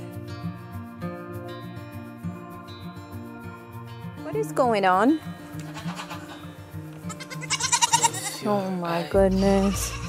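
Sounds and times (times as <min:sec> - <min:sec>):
background music with low drone: 0:00.0 - 0:10.0
goat kids bleating: 0:05.6 - 0:06.4, 0:07.0 - 0:10.0.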